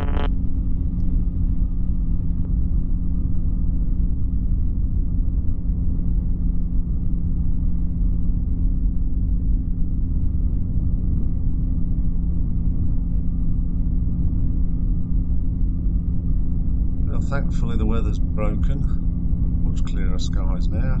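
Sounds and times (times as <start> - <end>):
microlight engine and propeller droning: 0.0 - 21.0.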